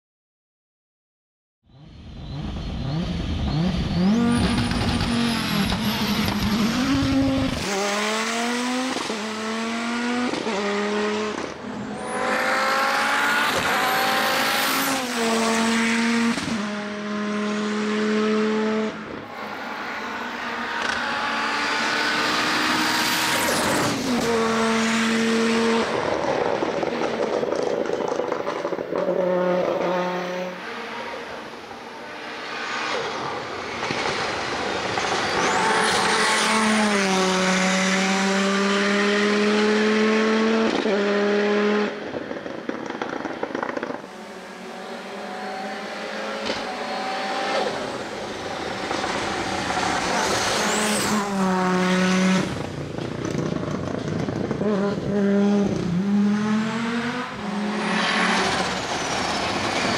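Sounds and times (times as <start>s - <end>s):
rally car engine at full throttle: 1.7s - 59.9s.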